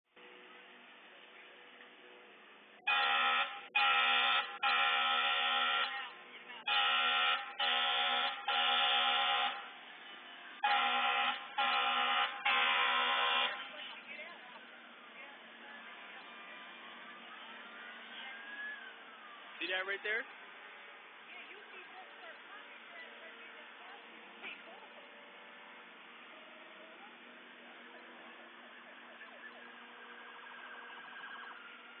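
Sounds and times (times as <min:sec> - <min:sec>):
vehicle horn blasts: 0:02.8 - 0:06.0, 0:06.6 - 0:09.6, 0:10.6 - 0:13.7.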